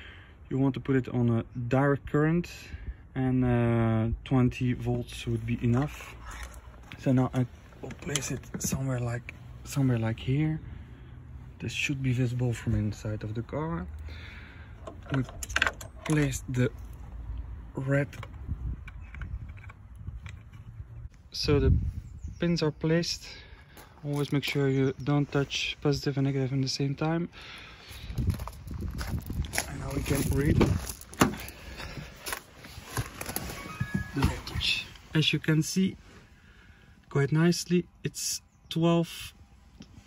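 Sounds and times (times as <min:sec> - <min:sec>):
knocks and rustling in a car: 0:30.5 - 0:31.5.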